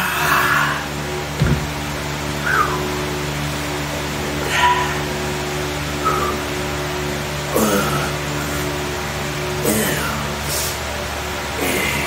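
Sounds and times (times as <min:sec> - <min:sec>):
steady low hum: 0:00.0 - 0:12.0
dull thump: 0:01.4 - 0:01.8.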